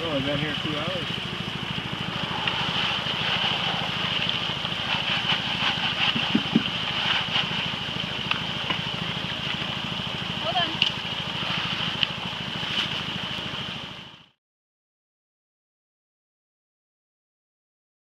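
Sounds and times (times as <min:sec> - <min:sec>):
water gushing through sluice: 0:00.0 - 0:13.9
small pump engine throbbing: 0:00.0 - 0:14.4.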